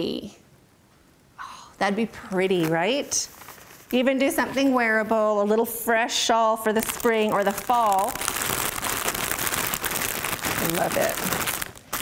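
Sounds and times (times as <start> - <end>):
plastic packaging crinkling: 2.2 - 4.4, 6.7 - 12.0.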